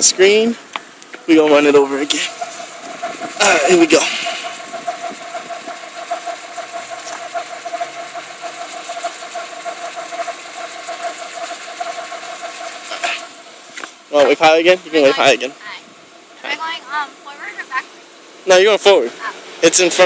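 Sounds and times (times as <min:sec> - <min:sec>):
steady whine: 0:00.0 - 0:18.6
car engine idling: 0:00.0 - 0:20.0.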